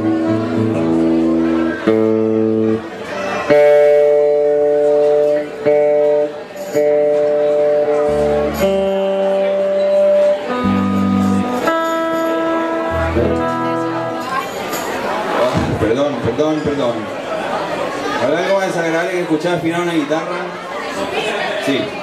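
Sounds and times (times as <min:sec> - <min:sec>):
keyboard holding chords: 0:00.0 - 0:16.0
electric guitars playing chords: 0:00.0 - 0:17.0.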